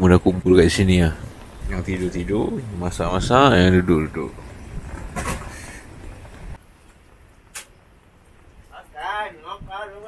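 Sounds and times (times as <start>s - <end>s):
strong wind on microphone: 0.7s - 6.6s.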